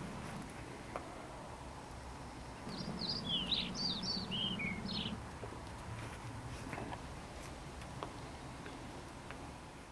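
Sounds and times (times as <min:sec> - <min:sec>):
bird chirping: 0:02.1 - 0:05.2
low background rumble: 0:02.6 - 0:05.3.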